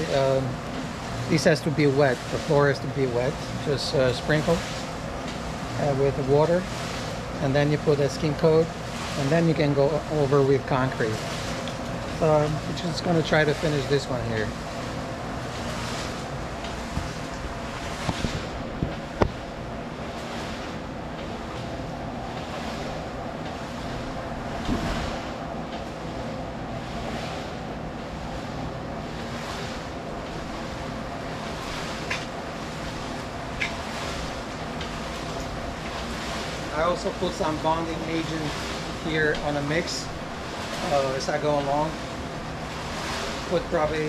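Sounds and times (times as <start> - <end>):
steady mechanical hum: 0.0 - 44.0.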